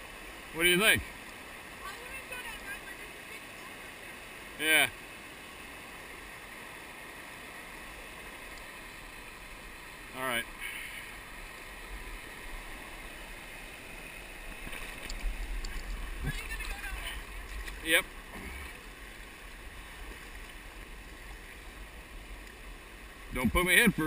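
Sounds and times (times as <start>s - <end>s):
river water running over rocks: 0.0s - 24.0s.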